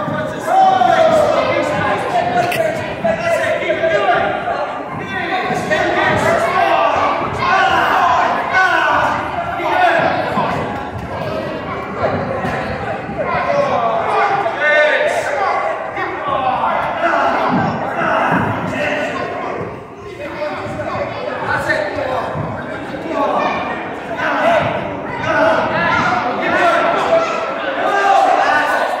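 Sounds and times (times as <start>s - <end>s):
children chattering: 0.0s - 29.0s.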